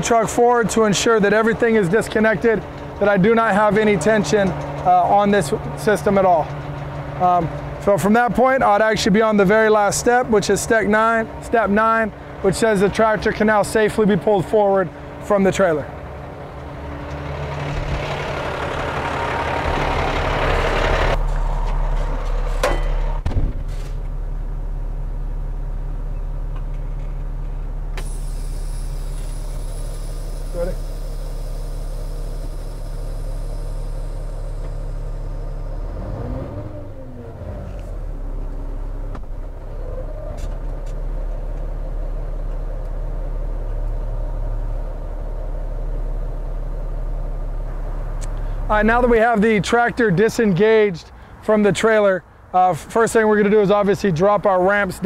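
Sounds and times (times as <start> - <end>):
diesel truck engine running: 0.0 - 55.0
short whine: 27.6 - 38.5
air hiss: 28.0 - 35.4.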